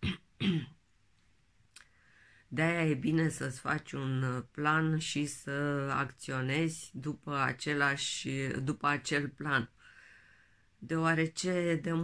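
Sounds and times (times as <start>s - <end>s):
woman clearing her throat: 0.0s - 0.8s.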